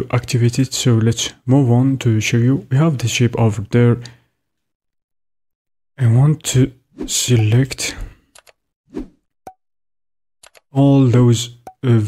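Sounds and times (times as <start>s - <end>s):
computer mouse clicks: 8.3s - 8.6s, 10.4s - 10.7s.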